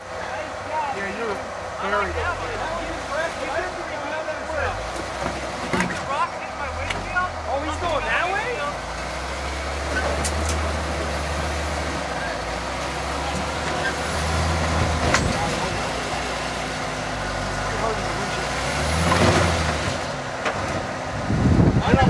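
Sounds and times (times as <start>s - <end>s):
off-road vehicle engine low revs: 0.0s - 22.0s.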